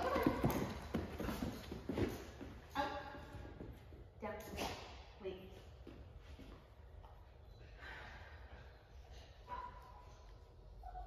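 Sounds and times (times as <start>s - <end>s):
dog paws on rubber floor: 0.0s - 7.2s.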